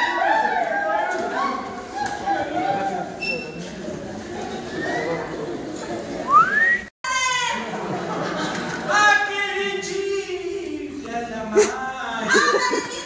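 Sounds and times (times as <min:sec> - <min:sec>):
voices from stage and audience: 0:00.0 - 0:13.0.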